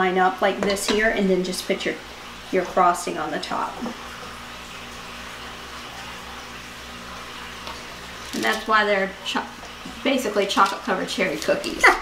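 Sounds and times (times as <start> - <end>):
steady low hum: 0.1 - 11.7.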